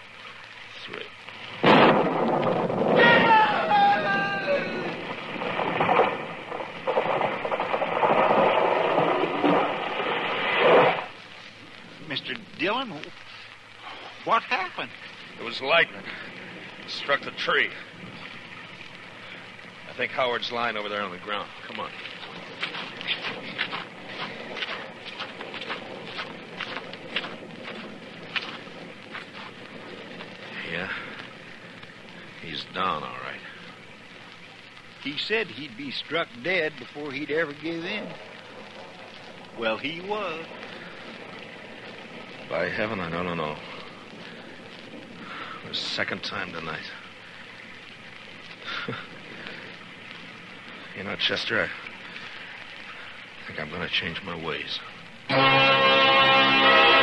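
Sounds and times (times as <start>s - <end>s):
steady rain: 0.0s - 57.0s
thunderclap crash: 1.6s - 11.2s
crunching footsteps: 21.2s - 32.6s.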